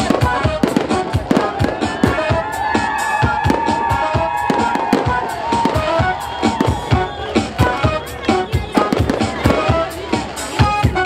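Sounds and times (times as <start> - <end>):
fireworks bangs and crackles: 0.0 - 11.0.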